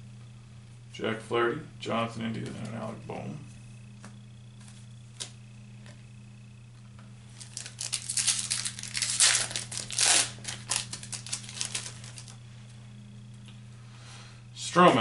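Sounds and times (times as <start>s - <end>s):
card pack wrapper tearing and crinkling: 7.4s - 12.3s.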